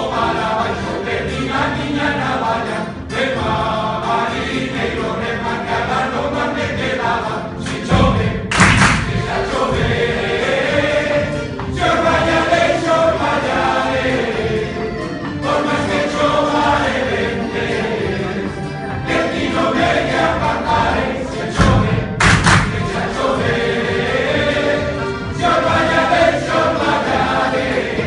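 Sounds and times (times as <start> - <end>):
accordion: 0.0 - 28.0
male group singing in chorus: 0.0 - 28.0
guitars: 6.3 - 28.0
loud thump: 8.0 - 10.1, 21.6 - 23.0.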